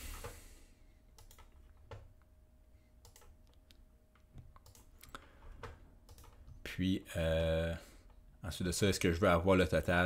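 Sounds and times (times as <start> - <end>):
faint steady hum: 0.0 - 10.0
computer keyboard and mouse clicks: 1.1 - 2.1, 3.0 - 6.6.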